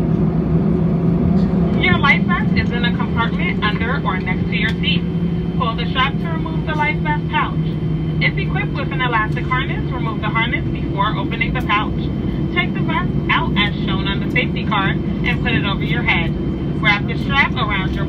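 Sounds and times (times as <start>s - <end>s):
jet engines idling drone: 0.0s - 18.0s
person speaking over cabin speakers: 1.7s - 18.0s.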